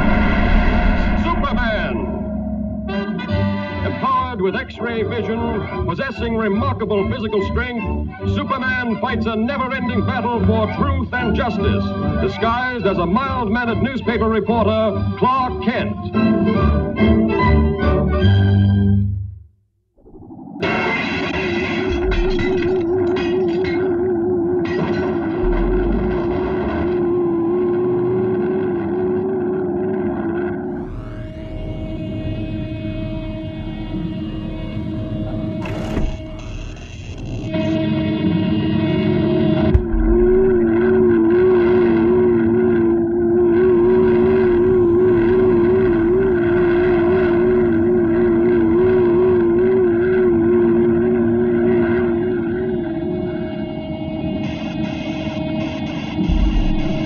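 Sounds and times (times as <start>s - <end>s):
mechanical engine drone: 0.0s - 2.5s, 23.8s - 38.5s, 39.7s - 53.4s, 54.2s - 57.0s.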